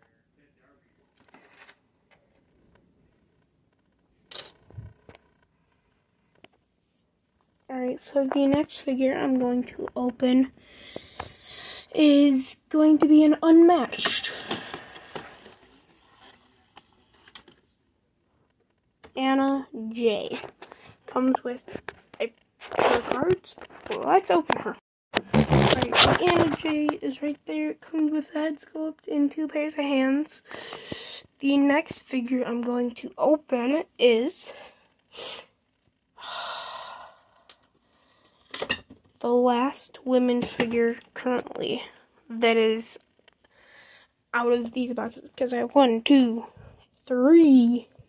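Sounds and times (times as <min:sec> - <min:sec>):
person sighing: 0:36.2 - 0:37.6.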